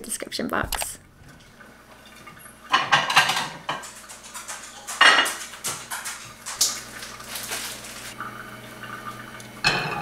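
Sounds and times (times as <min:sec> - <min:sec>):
dishes clinking and clattering: 0:01.2 - 0:10.0.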